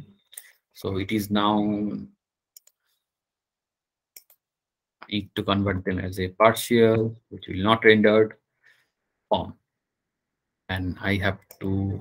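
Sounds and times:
computer mouse clicks: 2.5s - 2.9s, 4.2s - 4.4s.

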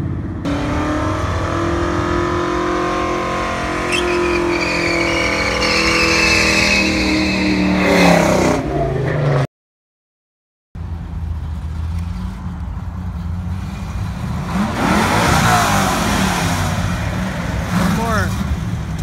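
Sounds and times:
car engine revving high: 0.4s - 9.1s, 14.4s - 18.3s
tyres squealing: 3.5s - 7.8s.

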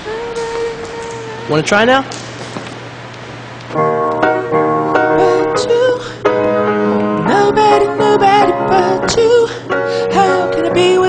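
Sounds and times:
piano chords: 3.7s - 11.0s.

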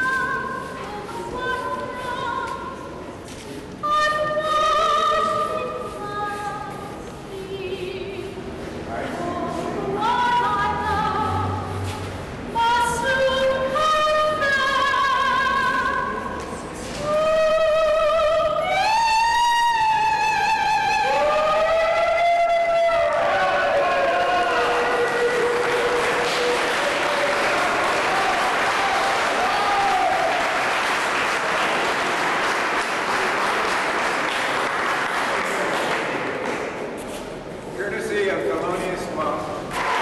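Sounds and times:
soprano singing opera: 0.0s - 3.0s, 3.8s - 8.4s, 9.0s - 11.8s, 12.5s - 16.3s, 16.9s - 26.8s
audience applause: 23.0s - 36.7s, 39.7s - 40.0s.

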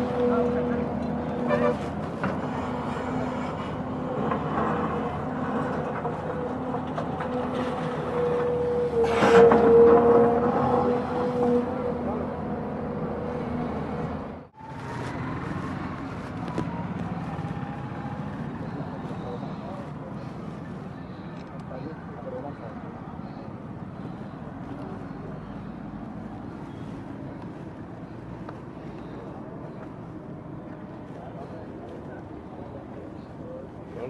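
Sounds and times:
excavator diesel engine droning: 0.0s - 34.0s
crowd chatter: 16.0s - 34.0s.

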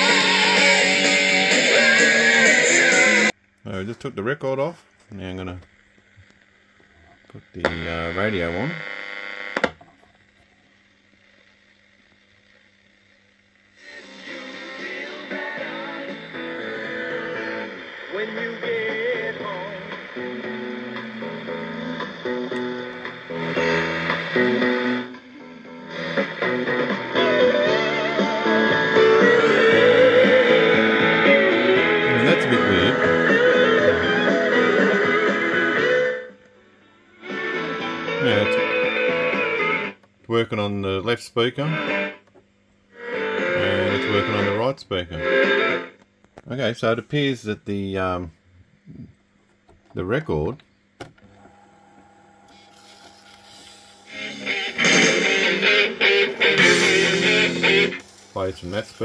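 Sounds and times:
music from stereo speakers: 0.0s - 3.3s, 13.8s - 36.4s, 53.6s - 58.3s
faint steady hum: 0.0s - 59.0s.

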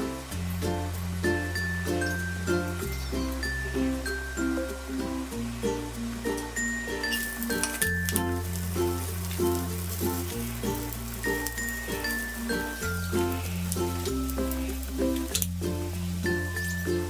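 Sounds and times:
background music with chiming melody: 0.0s - 17.0s
oil sizzling: 0.0s - 17.0s.

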